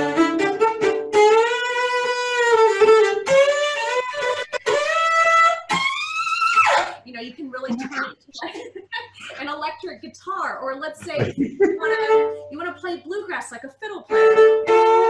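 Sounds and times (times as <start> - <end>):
person speaking: 7.1 - 9.8, 10.8 - 12.1
cello bowed hard: 14.1 - 15.0.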